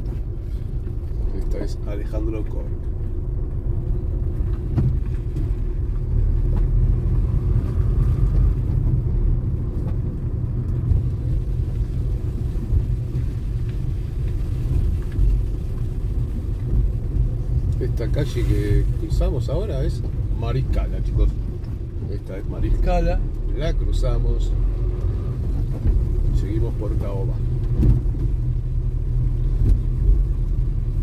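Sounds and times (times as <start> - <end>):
car engine rumble: 0.0 - 31.0
road noise inside car: 0.0 - 31.0.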